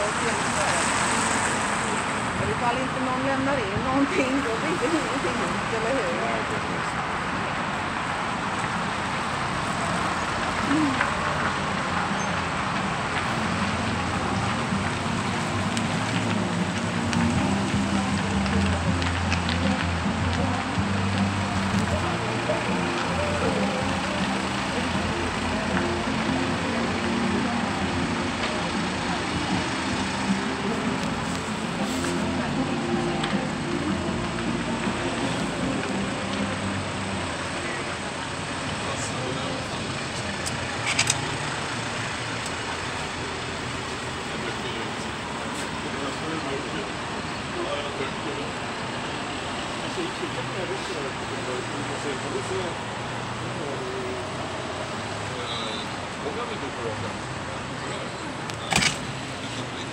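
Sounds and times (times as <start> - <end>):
city street noise: 0.0 - 59.9
indistinct voices: 9.2 - 59.9
sharp click: 58.5 - 59.1.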